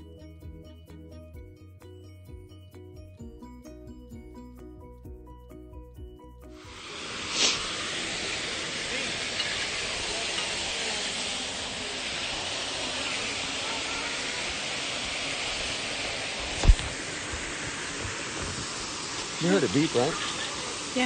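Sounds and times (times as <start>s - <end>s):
small waterfall rushing: 6.6s - 21.0s.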